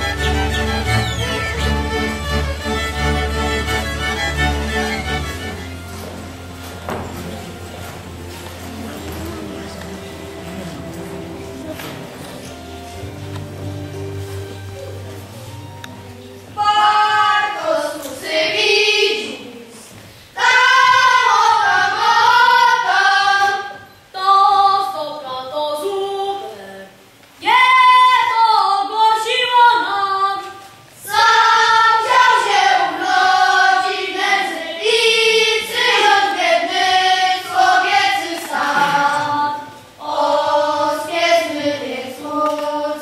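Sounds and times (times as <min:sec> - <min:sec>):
children singing: 0:16.6 - 0:19.8, 0:20.4 - 0:24.9, 0:31.0 - 0:43.0.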